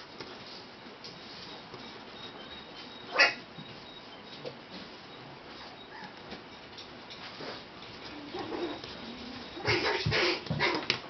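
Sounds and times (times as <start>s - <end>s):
puppy barking: 3.1s - 3.4s, 9.6s - 11.0s.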